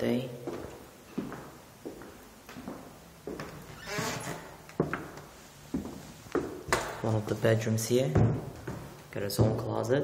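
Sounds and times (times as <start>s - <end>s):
footsteps on hardwood floor: 0.4s - 9.8s.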